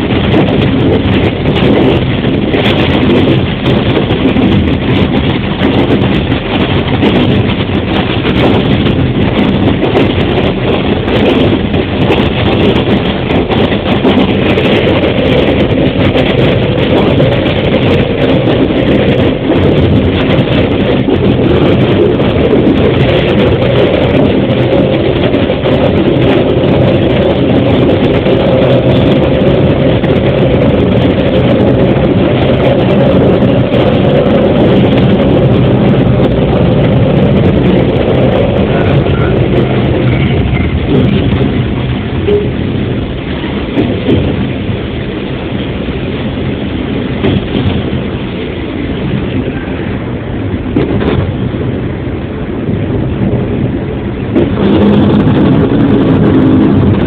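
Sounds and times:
diesel railcar engine running: 0:00.0 - 0:57.0.

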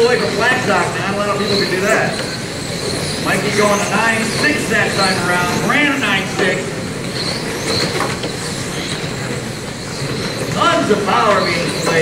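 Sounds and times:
electric toy cars whirring: 0:00.0 - 0:12.0
faint high motor whine: 0:00.0 - 0:12.0.

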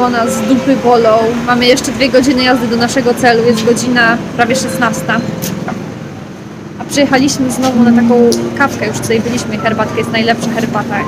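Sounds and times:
woman speaking: 0:00.0 - 0:05.4, 0:06.8 - 0:11.0
road traffic: 0:00.0 - 0:11.0.

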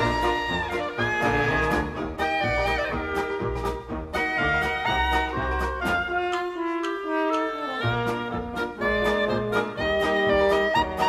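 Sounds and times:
upbeat jazz band music: 0:00.0 - 0:11.0.

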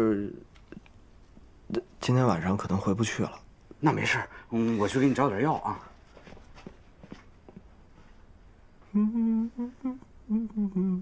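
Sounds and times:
young man whimpering hum: 0:00.0 - 0:00.4, 0:08.9 - 0:11.0.

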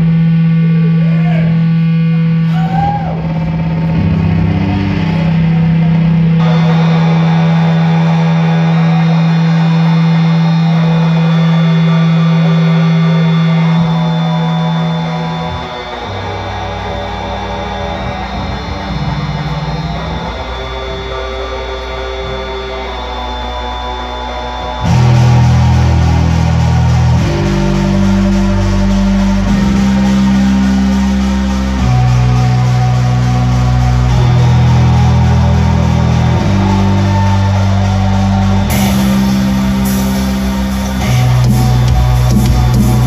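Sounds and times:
electric guitar: 0:00.0 - 0:43.0
loud held low note: 0:00.0 - 0:43.0.

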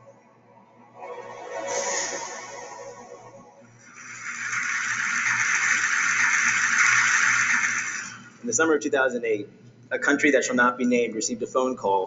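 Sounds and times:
steady hiss: 0:01.6 - 0:09.4.

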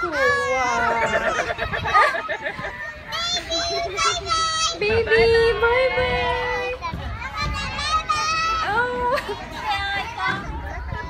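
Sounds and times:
playground chatter: 0:00.0 - 0:11.0.

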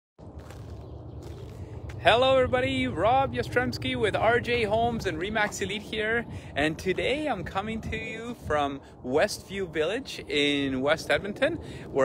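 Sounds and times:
low outdoor rumble: 0:00.2 - 0:12.0.

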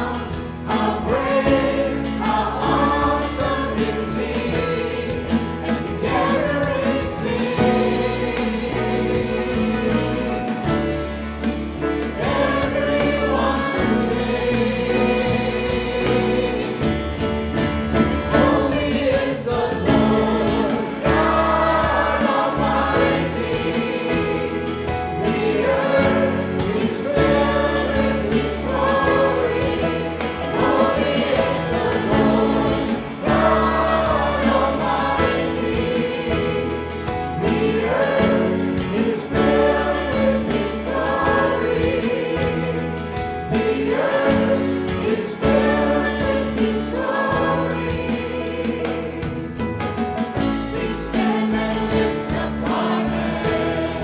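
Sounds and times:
bass guitar: 0:00.0 - 0:54.0
choir singing worship song: 0:00.0 - 0:54.0
piano: 0:00.0 - 0:54.0.

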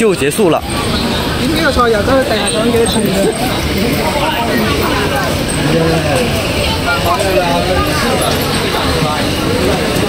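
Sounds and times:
passing traffic hum: 0:00.0 - 0:10.0
people talking: 0:00.0 - 0:10.0.

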